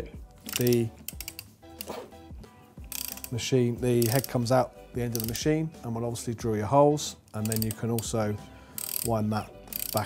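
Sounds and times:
faint background music: 0:00.0 - 0:10.0
ratchet clicking: 0:00.4 - 0:02.0, 0:02.8 - 0:05.4, 0:07.3 - 0:10.0.

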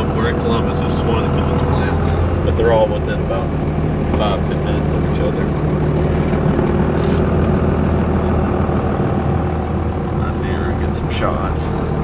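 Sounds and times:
diesel truck engine running: 0:00.0 - 0:12.0
road noise: 0:00.0 - 0:12.0.

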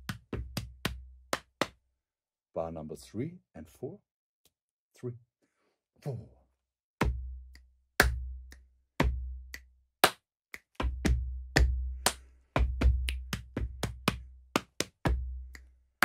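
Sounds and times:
body percussion claps and stomps: 0:00.0 - 0:01.8, 0:07.0 - 0:15.7
slow electronic drum beat: 0:12.6 - 0:14.1.

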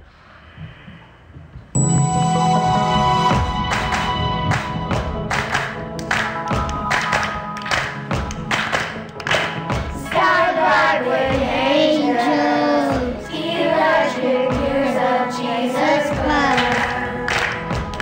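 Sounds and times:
accompaniment track with steady beat: 0:01.8 - 0:10.5, 0:16.1 - 0:18.0
children's choir singing: 0:09.8 - 0:18.0.

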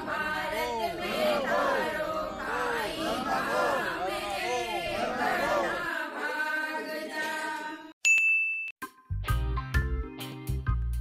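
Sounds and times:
bright ding: 0:08.0 - 0:08.8.

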